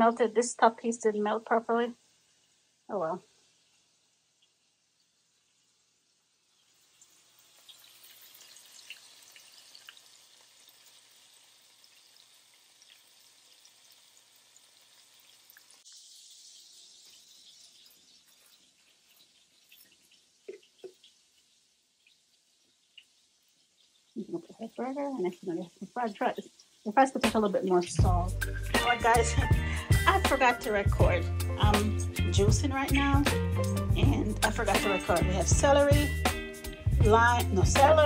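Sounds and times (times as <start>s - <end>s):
patties sizzling in a skillet: 0.0s - 38.0s.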